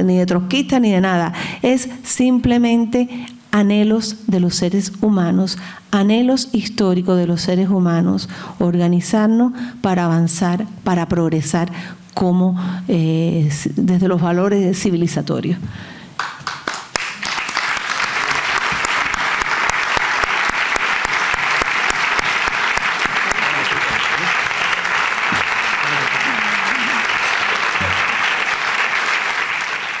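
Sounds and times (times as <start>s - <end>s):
audience applauding: 16.2s - 30.0s.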